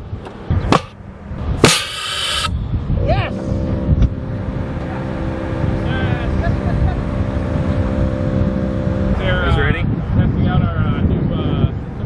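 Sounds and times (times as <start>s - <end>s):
air cannon pop: 1.6s - 2.5s
rush of escaping air: 1.6s - 2.6s.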